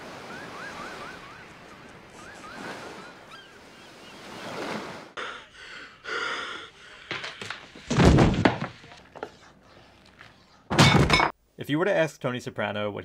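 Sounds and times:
faint warbling whistle: 0.3 - 4.2.

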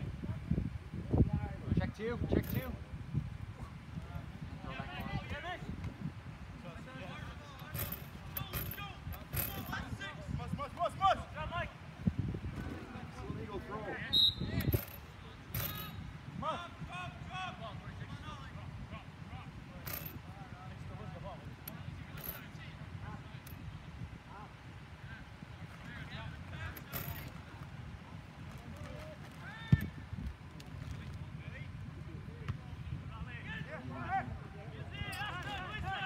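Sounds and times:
shouts and chatter: 33.3 - 36.0.

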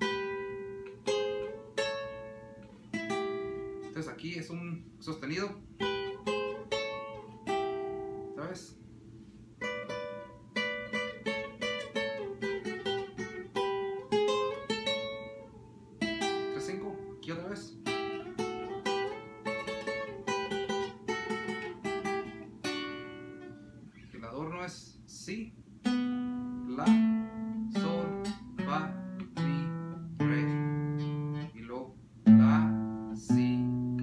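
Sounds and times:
guitar plucked lead line: 0.0 - 4.8, 5.6 - 8.6, 9.6 - 24.0, 25.8 - 34.0.

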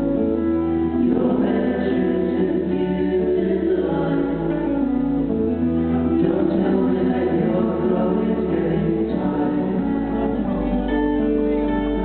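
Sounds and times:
acoustic guitars: 0.0 - 12.0
voices singing in harmony: 0.5 - 12.0.

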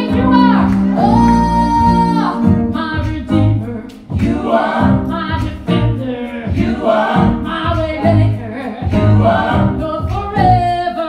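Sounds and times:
worship team singing with band: 0.1 - 11.0.

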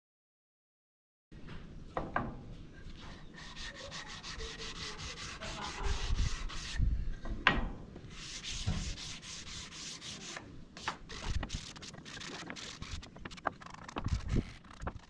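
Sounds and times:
sandpaper rubbing on wood: 2.9 - 6.8, 8.0 - 15.0.

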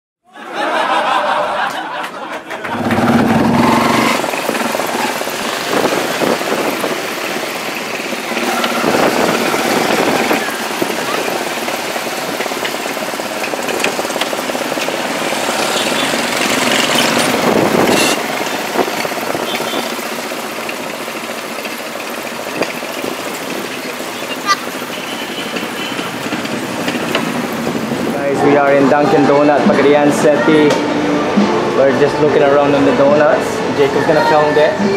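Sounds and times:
motorcycles passing: 0.6 - 34.9
indistinct voices: 2.5 - 13.7, 28.1 - 34.9.

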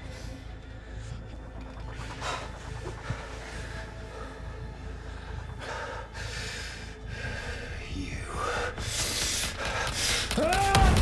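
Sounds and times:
person breathing hard: 0.0 - 11.0.

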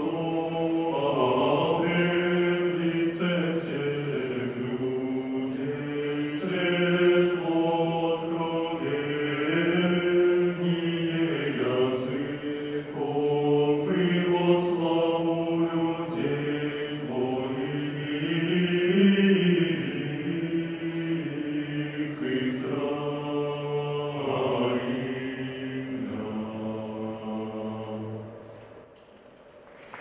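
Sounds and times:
male choir singing a cappella: 0.0 - 28.6.

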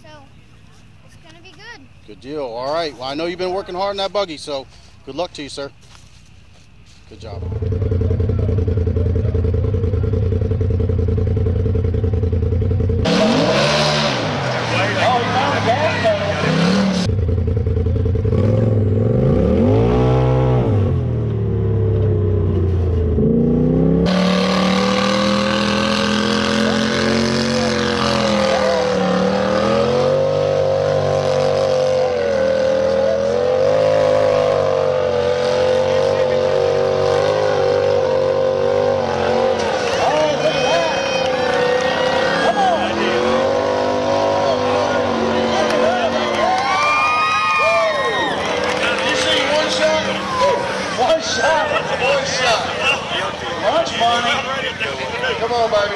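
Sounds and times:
buggy engines revving: 6.9 - 55.9.

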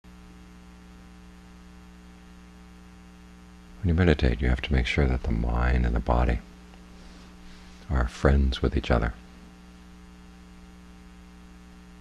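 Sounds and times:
electrical mains hum: 0.0 - 12.0
man speaking: 3.8 - 6.5, 7.9 - 9.2.

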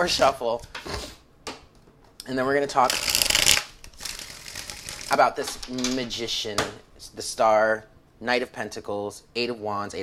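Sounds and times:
cards riffle shuffling: 2.8 - 5.9
rustling of card deck: 2.8 - 6.1.

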